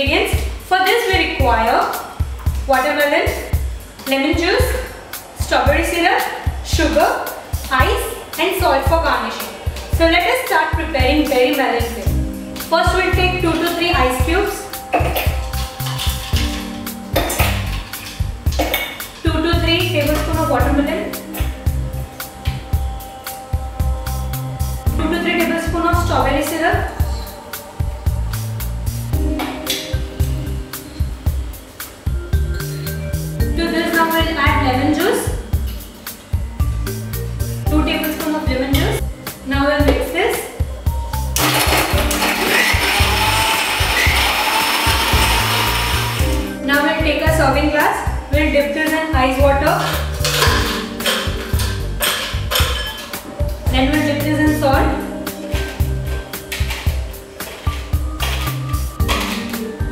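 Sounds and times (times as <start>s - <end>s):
background music with steady beat: 0.0s - 59.9s
ice cubes clinking in metal jar: 41.4s - 46.2s.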